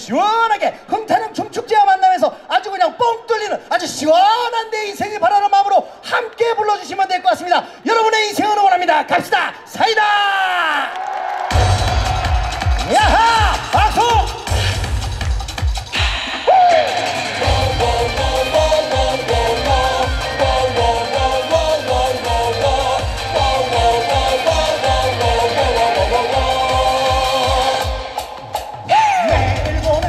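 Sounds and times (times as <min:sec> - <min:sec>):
kick drum beat: 0:11.5 - 0:16.2
live band playing: 0:11.5 - 0:30.0
loud pop dance music: 0:11.5 - 0:30.0
man singing: 0:16.4 - 0:30.0.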